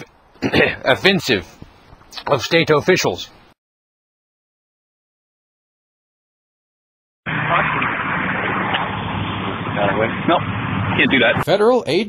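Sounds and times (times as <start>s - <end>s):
vehicle engine running: 7.3s - 11.4s
traffic din: 7.3s - 12.0s.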